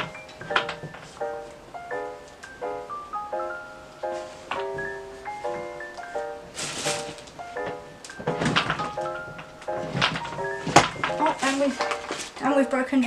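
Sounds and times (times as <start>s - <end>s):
background music: 0.0s - 13.0s
wooden drawers knocking and thudding: 6.6s - 12.4s.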